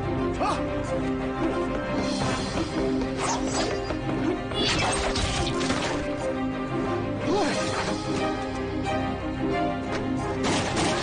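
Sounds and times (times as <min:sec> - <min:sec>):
action film music: 0:00.0 - 0:11.0.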